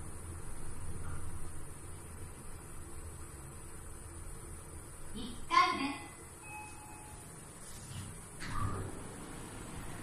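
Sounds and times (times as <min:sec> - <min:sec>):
elevator low steady hum: 0:00.0 - 0:10.0
elevator doors opening: 0:08.3 - 0:10.0.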